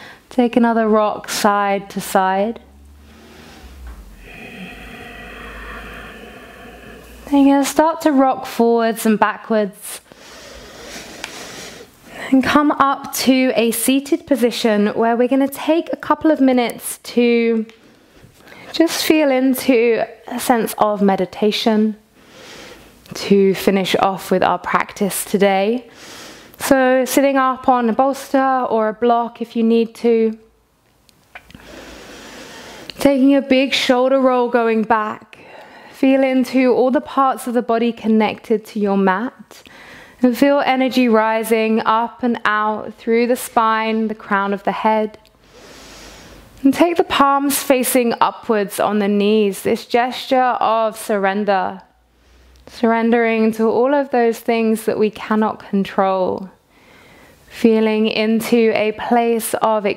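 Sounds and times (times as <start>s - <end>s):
low room hum: 0.0s - 59.9s
long breathy out-breath: 2.6s - 8.2s.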